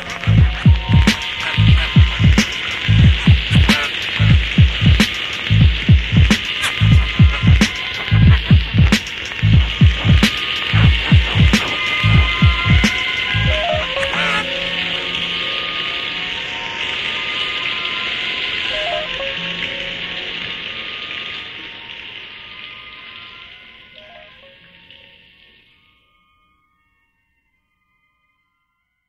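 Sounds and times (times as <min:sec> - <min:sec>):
hip hop drum beat: 0:00.0 - 0:14.5
held synth tones: 0:00.0 - 0:25.7
tape hiss: 0:00.0 - 0:29.0.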